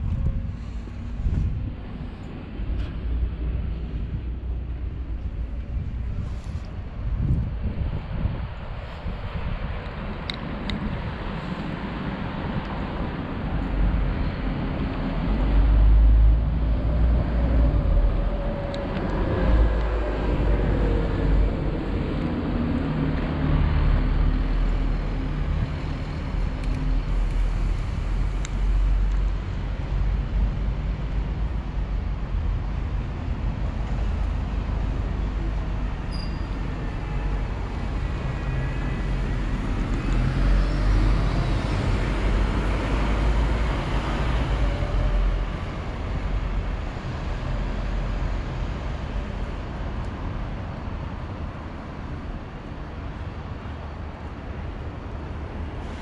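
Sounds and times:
road traffic rumble: 0.0 - 56.0.

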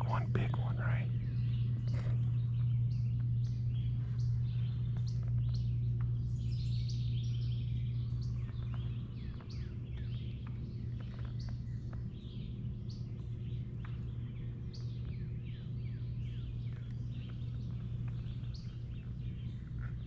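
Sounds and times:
small birds chirping: 0.0 - 20.0
steady low hum: 0.0 - 20.0.

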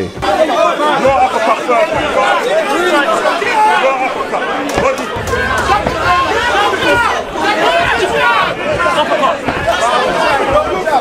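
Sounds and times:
crowd shouting: 0.2 - 11.0.

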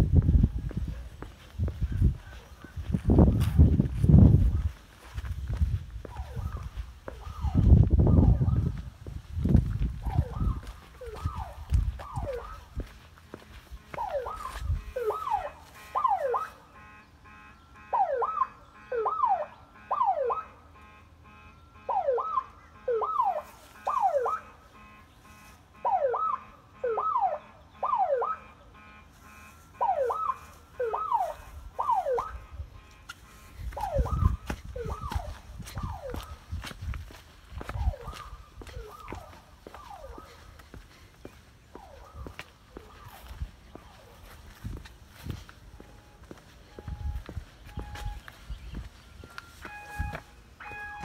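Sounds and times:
car alarm whooping: 6.0 - 8.8, 10.0 - 12.9, 13.5 - 44.4, 45.2 - 51.0.

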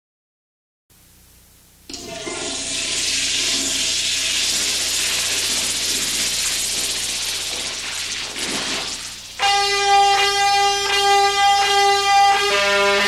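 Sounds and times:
toilet flushing: 1.9 - 13.0.

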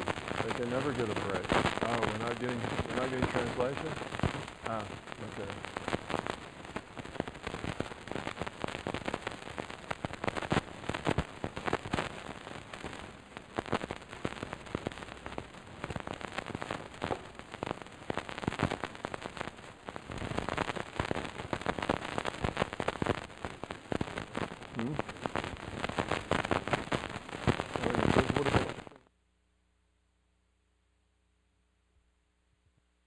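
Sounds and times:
microphone handling crackle: 0.0 - 29.0.

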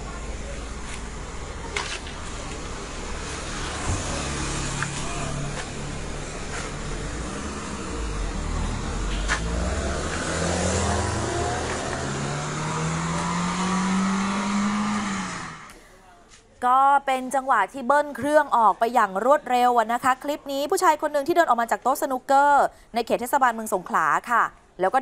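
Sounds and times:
car engine revving: 1.1 - 15.7.

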